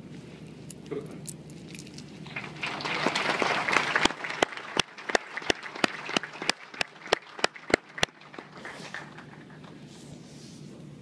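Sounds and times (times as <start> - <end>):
audience applause: 2.2 - 9.8
single sharp claps: 2.3 - 9.6.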